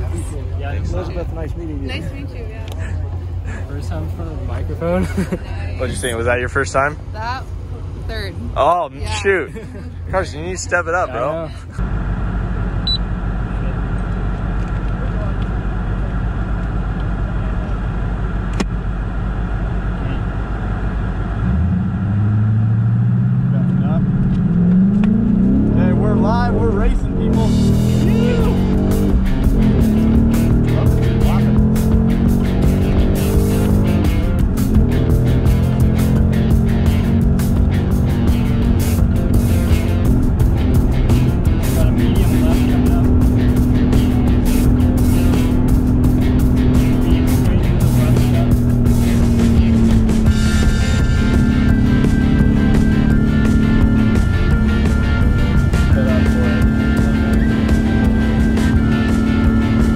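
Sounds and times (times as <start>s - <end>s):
car engine idling and accelerating: 0.0s - 59.9s
wind and road noise: 0.0s - 59.9s.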